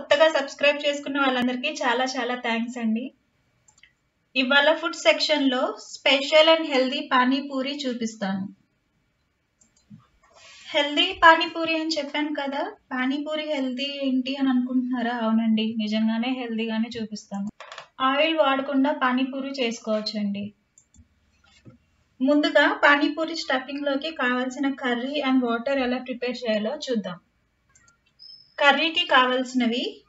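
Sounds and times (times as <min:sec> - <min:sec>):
woman speaking: 0:00.0 - 0:03.2, 0:04.4 - 0:08.6, 0:10.7 - 0:20.6, 0:22.2 - 0:27.2, 0:28.6 - 0:30.0.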